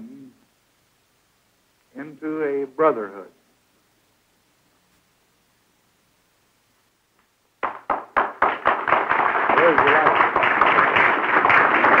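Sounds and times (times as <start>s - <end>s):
audience clapping: 7.6s - 12.0s.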